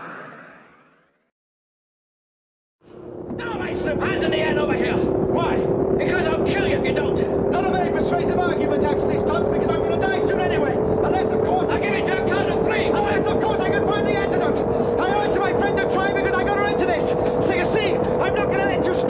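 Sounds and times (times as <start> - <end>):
spaceship engine drone: 2.8 - 19.0
man talking: 3.3 - 19.0.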